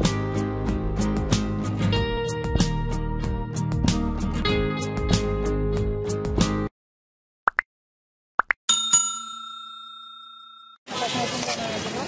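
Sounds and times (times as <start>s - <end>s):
bell-like ding: 8.7s - 10.8s
street noise: 10.9s - 12.0s.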